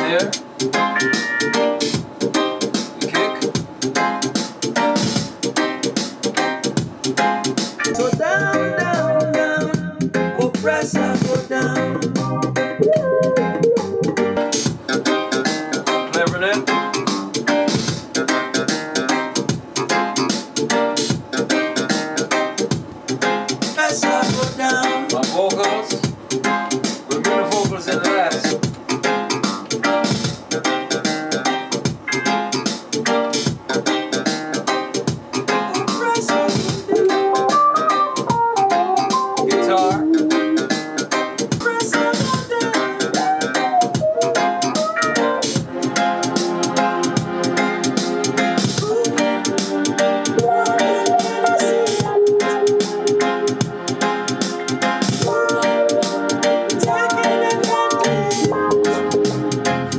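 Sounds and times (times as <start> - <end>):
reggae music: 0.0 - 59.9.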